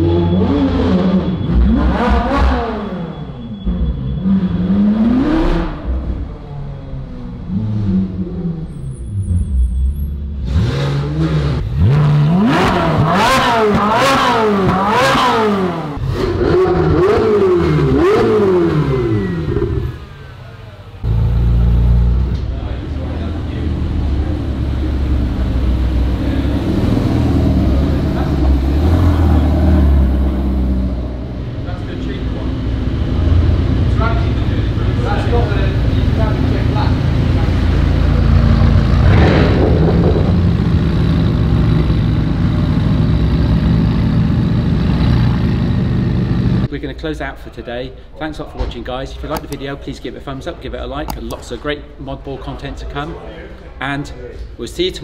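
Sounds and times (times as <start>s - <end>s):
supercar engines revving: 0.0s - 46.7s
deep low engine rumble: 15.9s - 46.7s.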